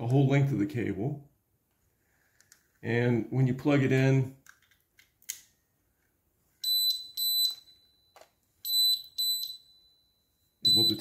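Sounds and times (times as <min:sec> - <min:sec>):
high-pitched alarm beeps: 0:06.6 - 0:11.0.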